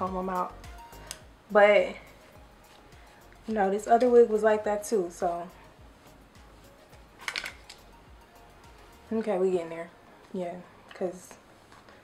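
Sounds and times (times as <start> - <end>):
brush strokes through wig: 2.0 - 4.0, 5.0 - 7.2.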